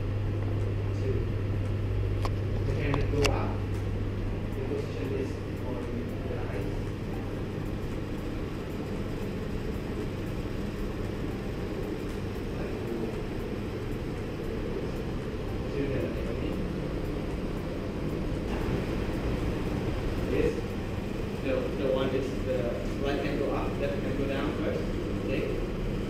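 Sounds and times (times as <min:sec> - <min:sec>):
faint hum: 0:00.0 - 0:26.0
low background rumble: 0:00.0 - 0:26.0.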